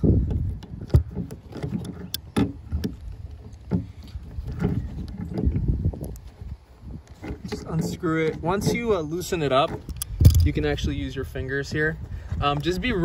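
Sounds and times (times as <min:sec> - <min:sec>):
low rumble of handling noise: 0:00.0 - 0:13.0.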